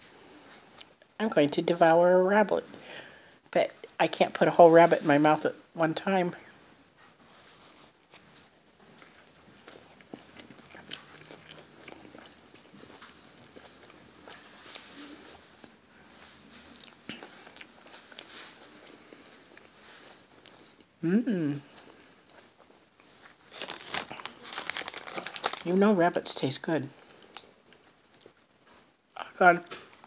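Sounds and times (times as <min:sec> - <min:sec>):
person chewing candy: 0:08.9 - 0:15.8, 0:16.7 - 0:21.0, 0:21.6 - 0:25.8
plastic packaging crinkling: 0:23.4 - 0:26.4.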